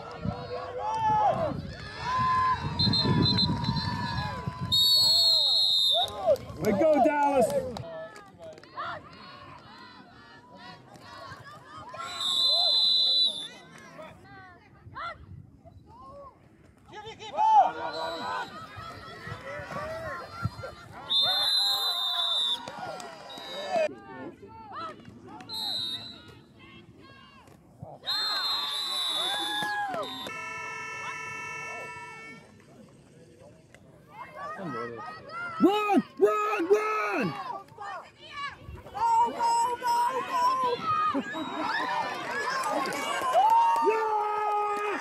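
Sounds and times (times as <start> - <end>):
shrill referee's whistle blasts: 2.8 - 4.0, 4.7 - 6.1, 12.0 - 13.6, 21.1 - 22.7, 23.3 - 23.8, 25.5 - 26.3, 28.0 - 32.2
players and spectators shouting: 16.9 - 27.4, 28.0 - 32.6, 34.1 - 45.0.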